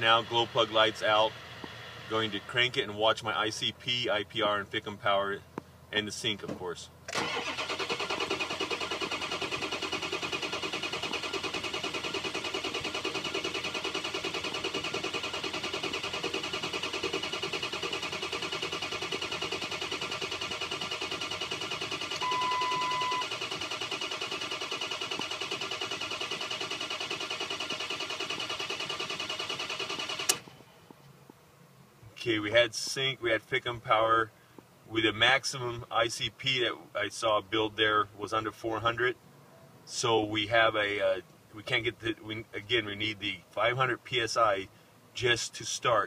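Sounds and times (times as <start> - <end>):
diesel engine cranking on starter: 7.1 - 30.6
short beep: 22.2 - 23.3.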